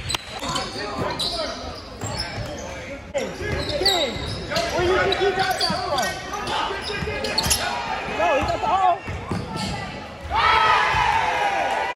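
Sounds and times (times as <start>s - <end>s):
basketball bouncing in a gym: 8.3s - 11.0s.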